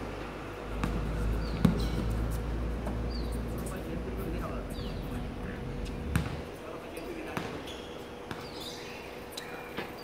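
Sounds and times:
basketball bouncing on hard court: 0:00.7 - 0:02.2, 0:06.0 - 0:06.5, 0:07.3 - 0:08.6.

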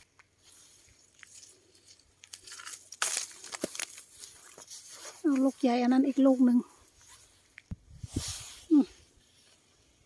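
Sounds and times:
twigs cracking: 0:00.0 - 0:05.6
leaves and twigs rustling: 0:00.0 - 0:10.0.

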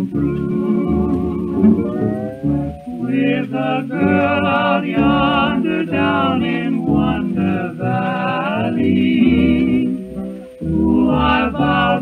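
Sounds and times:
person singing: 0:00.0 - 0:12.0
plucked guitar: 0:00.0 - 0:12.0
string bass: 0:00.0 - 0:12.0.

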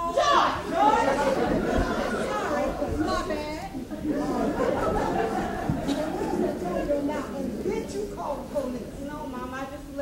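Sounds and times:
overlapping voices: 0:00.0 - 0:07.8.

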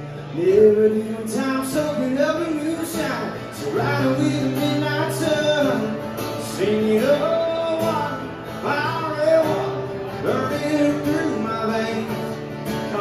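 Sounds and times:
man singing: 0:00.0 - 0:13.0
strummed acoustic guitars: 0:00.0 - 0:13.0.

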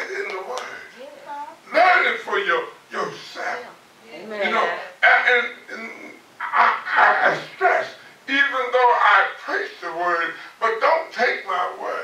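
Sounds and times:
man preaching loudly: 0:01.7 - 0:03.6, 0:04.4 - 0:05.6.

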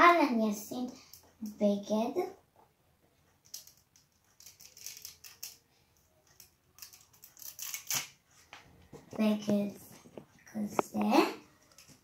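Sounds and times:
plastic doll rustles and clicks: 0:03.3 - 0:12.0.

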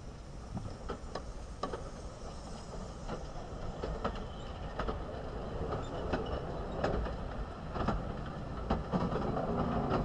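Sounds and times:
steam train rolling past: 0:00.0 - 0:10.0
wheels clicking over rail joints: 0:00.4 - 0:10.0.

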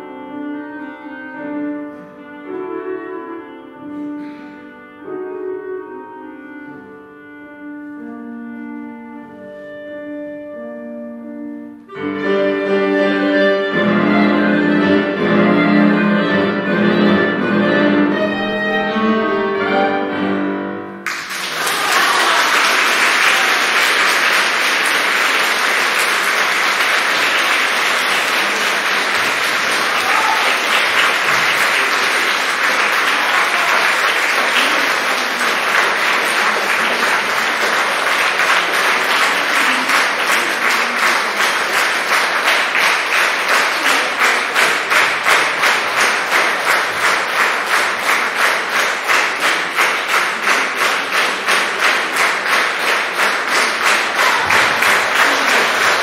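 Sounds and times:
audience applauding: 0:21.0 - 0:56.0.

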